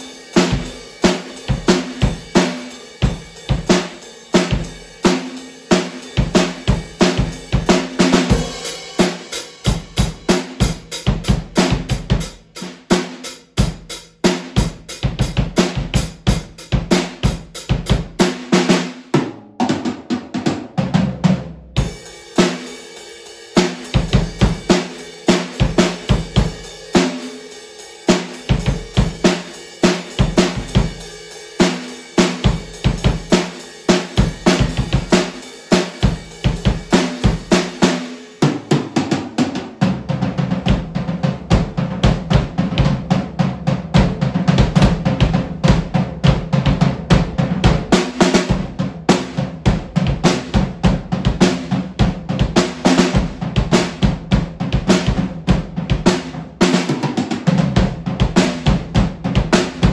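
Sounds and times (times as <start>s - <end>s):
drum kit groove: 0.0s - 59.9s
rapid drum strokes: 0.0s - 59.9s.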